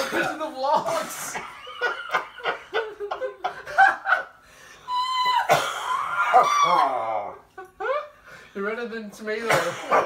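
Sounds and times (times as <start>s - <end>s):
people laughing: 1.2s - 4.4s.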